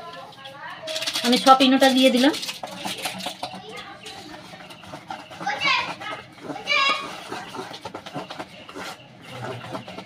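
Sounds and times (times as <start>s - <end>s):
whisk beating batter in bowl: 0.0s - 10.0s.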